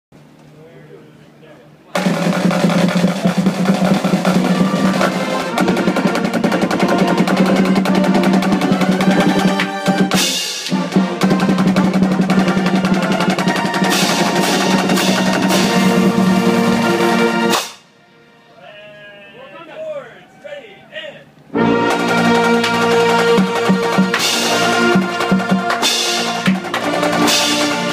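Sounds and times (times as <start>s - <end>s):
marching band brass and drums: 1.9s - 20.4s, 21.0s - 27.9s
voices: 18.4s - 21.4s.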